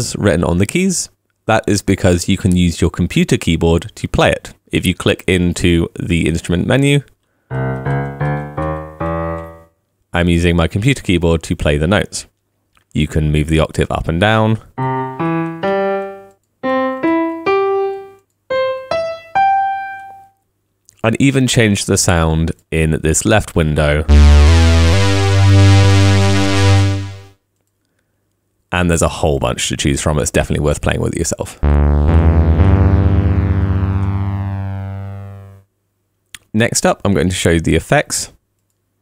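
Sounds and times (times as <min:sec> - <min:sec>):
buzzy synth lead notes: 0:07.5 - 0:09.7, 0:24.1 - 0:27.3, 0:31.6 - 0:35.6
piano broken chord: 0:07.5 - 0:09.7, 0:24.1 - 0:27.3, 0:31.6 - 0:35.6.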